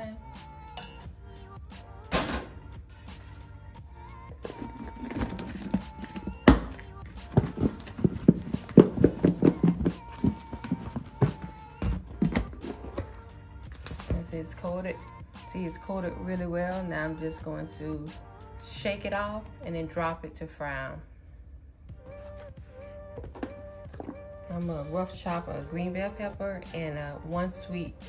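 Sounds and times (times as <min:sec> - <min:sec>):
ribs knocking in plastic bowl: 0:04.4 - 0:12.9.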